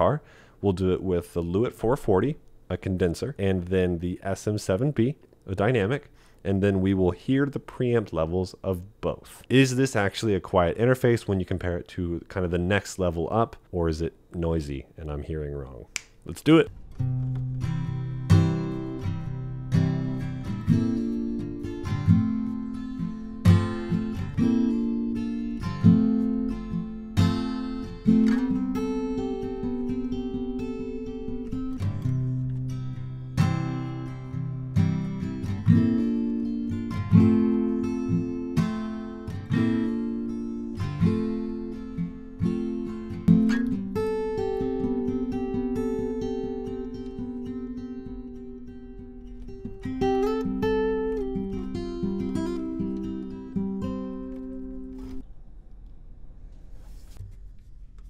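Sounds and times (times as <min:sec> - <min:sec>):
acoustic guitar strumming chords: 0:16.5 - 0:55.2.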